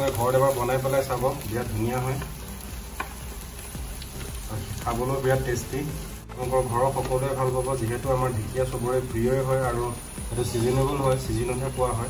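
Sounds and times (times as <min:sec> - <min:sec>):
food sizzling in a pan: 0:00.0 - 0:12.0
sharp tap: 0:03.0 - 0:03.2.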